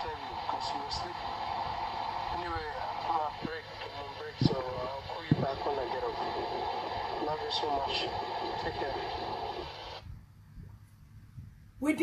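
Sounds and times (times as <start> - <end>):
recorded voice message hiss: 0.0 - 10.0
faint low rumble: 0.0 - 12.0.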